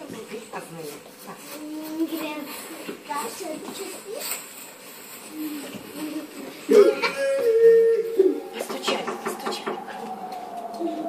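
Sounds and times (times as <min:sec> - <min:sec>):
young children chattering: 0:05.2 - 0:11.0.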